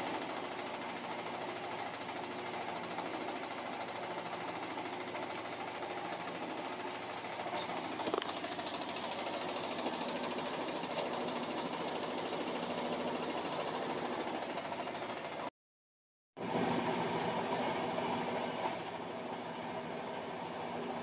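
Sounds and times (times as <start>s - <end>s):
washer drum whirring: 0.0s - 15.5s, 16.4s - 21.0s.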